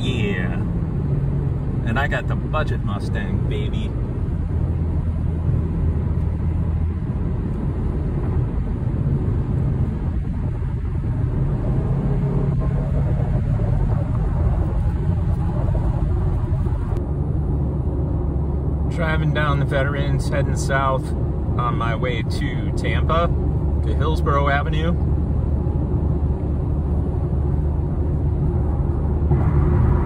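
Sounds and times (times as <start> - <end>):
car road and engine drone: 0.0 - 30.0.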